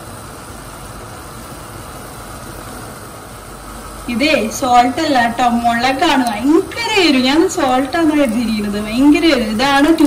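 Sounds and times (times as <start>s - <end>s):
gas burner hum and hiss: 0.0s - 10.0s.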